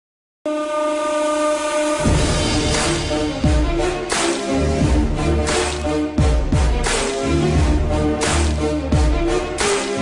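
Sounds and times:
steady horn-like tone: 0.5s - 4.2s.

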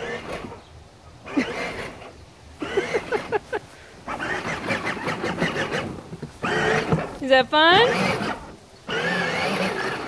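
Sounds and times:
toy car electric motor: 0.0s - 0.6s, 1.3s - 3.3s, 4.1s - 7.2s, 7.8s - 10.0s.

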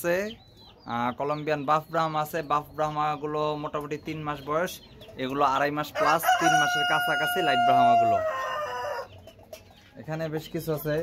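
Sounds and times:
rooster crowing: 5.9s - 9.1s.

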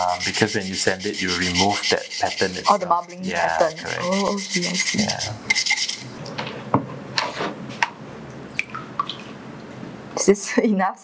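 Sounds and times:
water dripping: 8.2s - 9.8s.

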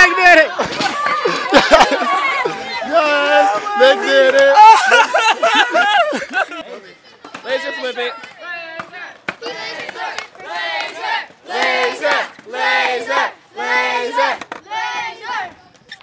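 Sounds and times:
children chanting in unison: 9.4s - 15.5s.

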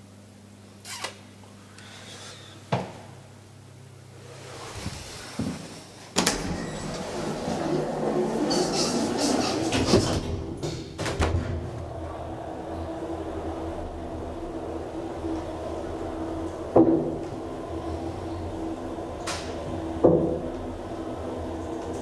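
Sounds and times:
elevator clack: 6.2s - 22.0s
elevator doors rattling: 6.2s - 22.0s
hydraulic unit humming: 6.2s - 22.0s.

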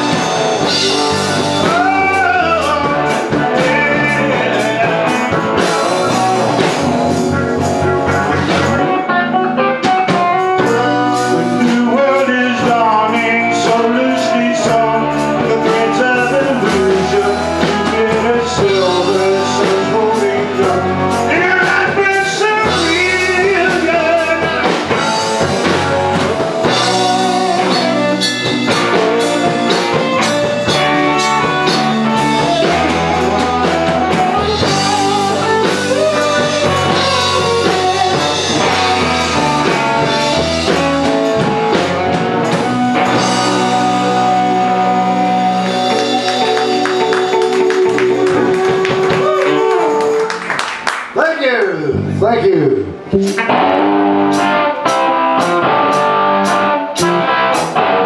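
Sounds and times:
lead vocalist singing: 0.0s - 6.8s, 10.6s - 42.0s, 42.6s - 50.3s
drum kit: 0.0s - 58.0s
electric guitars: 0.0s - 58.0s
keyboard: 0.0s - 58.0s.

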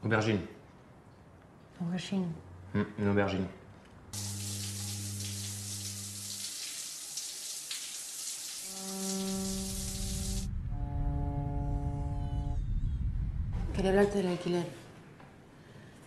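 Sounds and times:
shower spray hissing: 4.2s - 10.5s.

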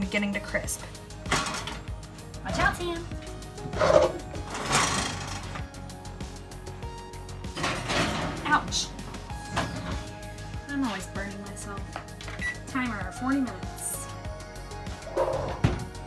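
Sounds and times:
background music with singing: 0.0s - 16.0s
metal clunks and scrapes: 1.3s - 1.9s, 3.6s - 5.6s, 7.5s - 8.6s, 9.4s - 10.2s.

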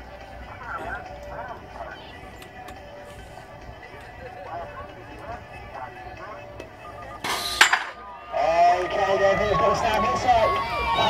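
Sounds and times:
metal gate slamming down: 7.2s - 8.0s
spectators shouting: 7.4s - 11.0s.

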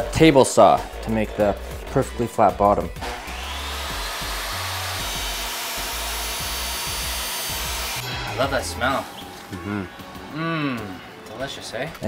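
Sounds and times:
table saw cutting wood: 3.0s - 10.2s.

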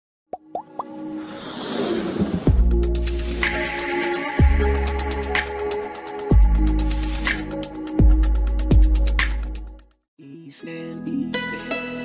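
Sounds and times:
building swell: 1.0s - 6.3s
electronic music: 2.5s - 9.8s.

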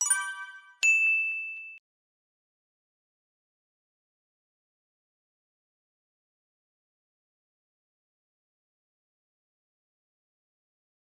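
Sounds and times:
bright notification ding: 0.0s - 1.8s.

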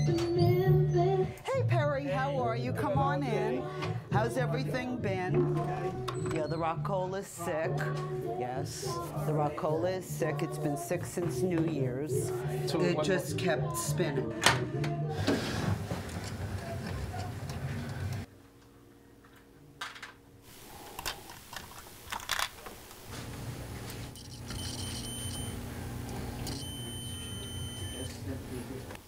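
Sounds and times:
electrical hum: 14.6s - 29.0s.

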